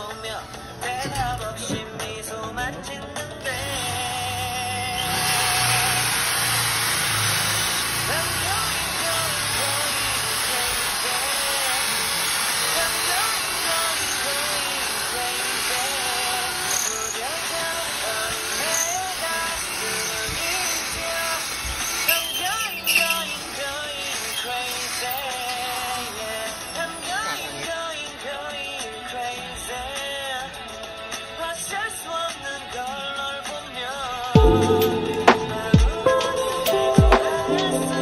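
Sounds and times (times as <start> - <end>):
background music with singing: 0.0 - 38.0
power drill boring into steel: 3.5 - 28.1.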